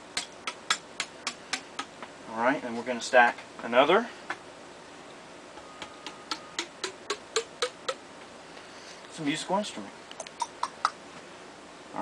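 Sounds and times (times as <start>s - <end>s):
hammer tapping on metal: 5.6s - 8.0s.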